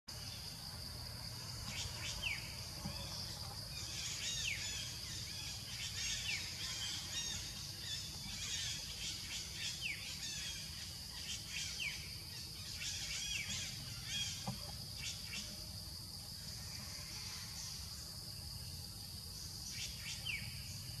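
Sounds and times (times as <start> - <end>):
high insect drone: 0.1 - 21.0
birds chirping: 1.3 - 15.8.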